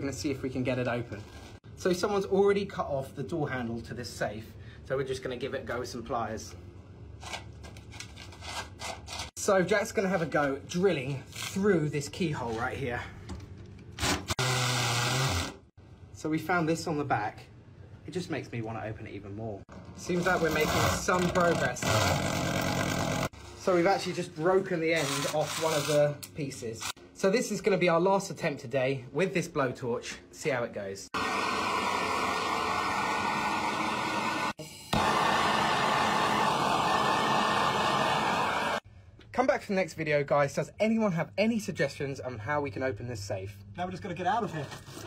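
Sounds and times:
cordless drill boring into steel: 0:14.0 - 0:15.6
blowtorch hissing: 0:31.2 - 0:38.8.

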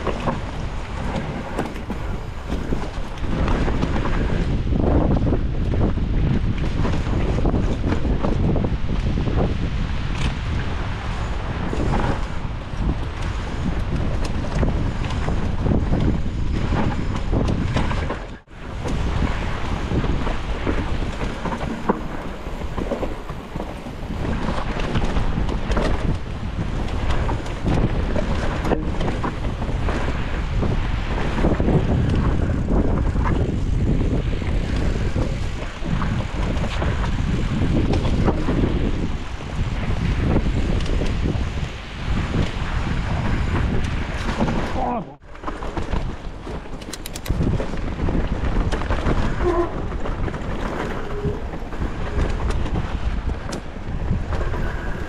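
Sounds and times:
bike tyre and frame rattle: 0:00.0 - 0:55.0
wind buffeting microphone: 0:00.0 - 0:55.0.

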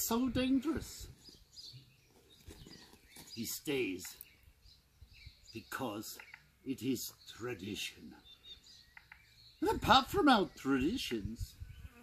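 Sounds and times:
faint bird chirps: 0:01.0 - 0:12.0.

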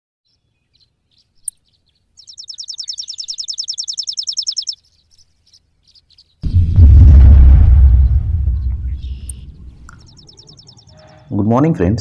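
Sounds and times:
small bird chirping and trilling: 0:00.2 - 0:06.4, 0:09.0 - 0:11.3.

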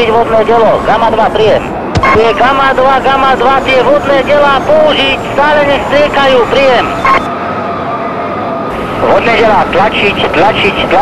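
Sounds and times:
voice over two-way radio: 0:00.0 - 0:07.2, 0:09.0 - 0:11.0
radio hiss: 0:00.9 - 0:07.2
steady high tone: 0:01.5 - 0:11.0.

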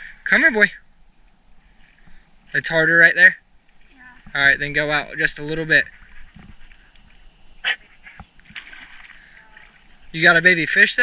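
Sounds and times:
faint splashing of water: 0:03.5 - 0:11.0.

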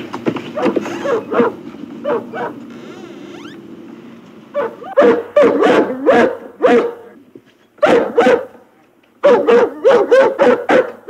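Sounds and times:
dog whimpering: 0:00.6 - 0:03.5, 0:04.6 - 0:06.2.

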